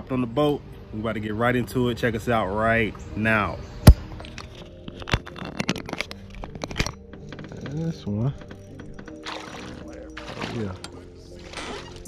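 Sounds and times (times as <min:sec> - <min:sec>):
sharp clicks and knocks: 0:03.9 - 0:09.3.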